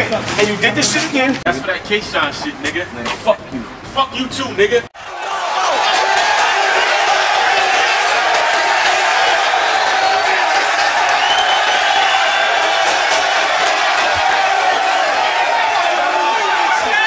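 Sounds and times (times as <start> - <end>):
crowd cheering and shouting: 5.0 - 17.0
whoops: 5.2 - 17.0.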